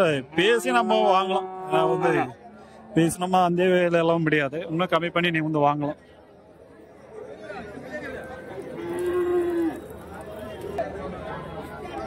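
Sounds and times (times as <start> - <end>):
crowd chatter: 0.0 - 12.0
cow mooing: 0.8 - 3.2, 8.8 - 9.8.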